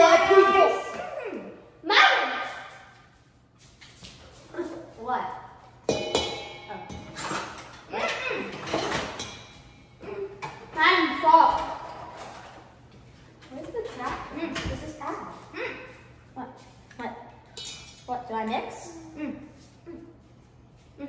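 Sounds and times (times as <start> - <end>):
children's voices: 0.0 - 2.4
knocks on metal bowl: 5.9 - 7.1
metallic clink on bowl: 5.9 - 7.1.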